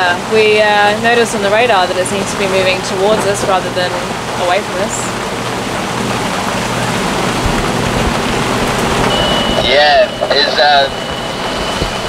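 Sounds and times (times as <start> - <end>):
low rumble of wind: 0.0 - 12.0
rain falling on a yacht: 0.0 - 12.0.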